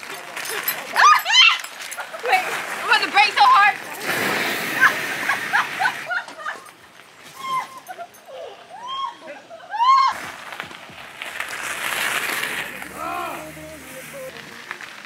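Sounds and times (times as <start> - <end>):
people calling and whooping: 0.0 - 4.0, 4.7 - 10.5, 12.7 - 15.0
bicycle tyres crunching gravel: 0.0 - 7.8, 9.8 - 15.0.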